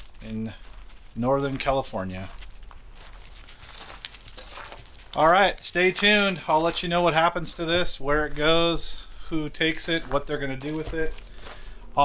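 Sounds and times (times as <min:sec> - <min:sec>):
light metallic clinks and jingling: 0:00.0 - 0:00.8, 0:03.4 - 0:06.9.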